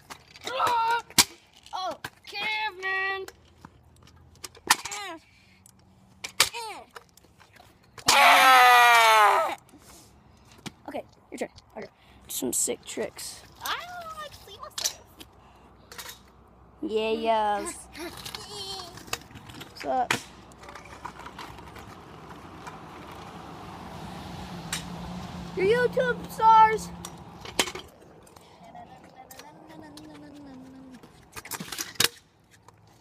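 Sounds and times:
boy yelling: 0.4s - 3.2s, 6.4s - 6.9s, 8.1s - 9.6s, 16.8s - 19.0s, 25.6s - 27.0s, 28.5s - 31.0s
scooter wheels rolling on asphalt: 12.5s - 15.3s, 15.9s - 33.0s.

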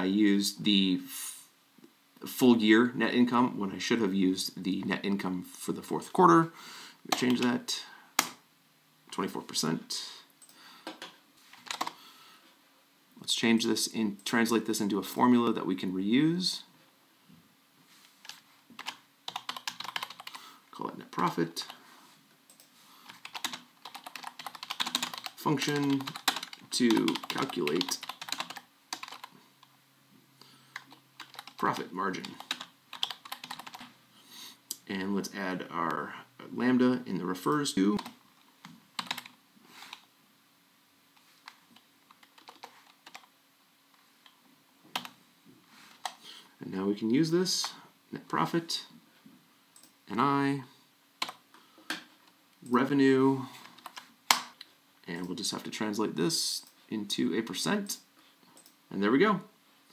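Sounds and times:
computer keyboard keystrokes: 11.6s - 12.0s, 18.3s - 20.4s, 23.1s - 29.3s, 30.8s - 31.6s, 32.3s - 33.9s, 39.0s - 39.3s, 41.5s - 43.3s.

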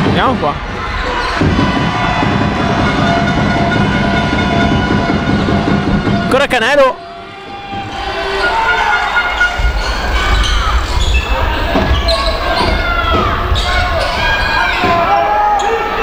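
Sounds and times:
voices on the court: 6.2s - 16.0s
shoe squeaks: 7.8s - 14.8s.

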